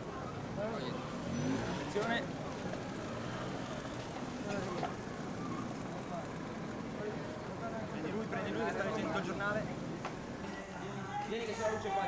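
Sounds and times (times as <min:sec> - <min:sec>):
traffic hum: 0:00.0 - 0:11.8.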